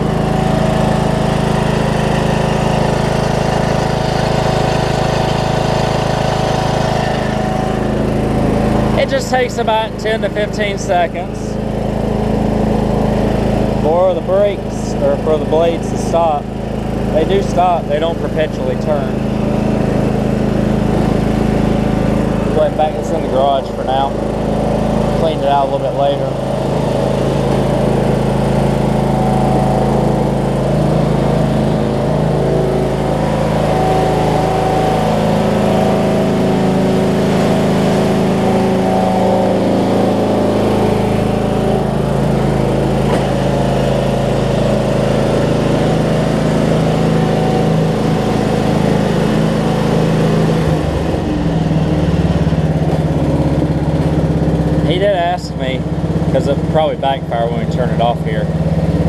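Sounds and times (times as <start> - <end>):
riding mower engine running: 0.0 - 59.0.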